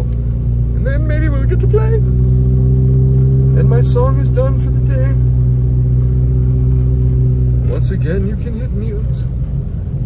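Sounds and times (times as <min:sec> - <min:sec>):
car engine and road hum: 0:00.0 - 0:10.0.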